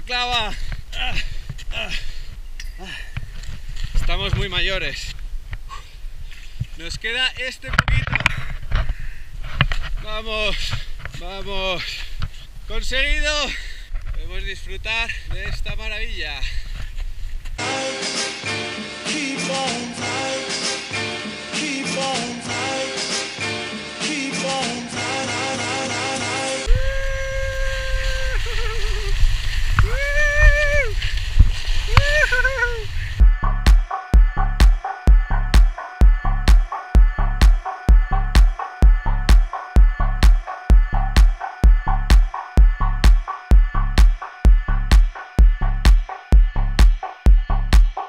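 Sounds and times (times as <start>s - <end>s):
rustles: 0.3s - 17.6s, 26.7s - 33.2s
hard breaths: 0.6s - 4.0s, 8.2s - 11.1s, 13.4s - 14.2s, 16.4s - 17.6s, 46.3s - 48.0s
music: 17.6s - 26.7s, 33.2s - 48.0s
skier whooping: 26.7s - 31.1s, 31.8s - 33.1s
skis in powder snow: 26.7s - 33.2s
wind on microphone: 26.7s - 34.6s
wind rumble: 26.7s - 47.8s
electronic beat with kick drum: 33.2s - 48.0s.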